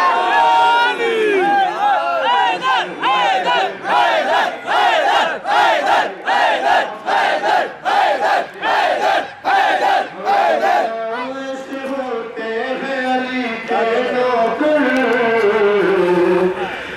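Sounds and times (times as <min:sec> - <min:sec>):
crowd of men chanting: 0:00.0 - 0:11.8.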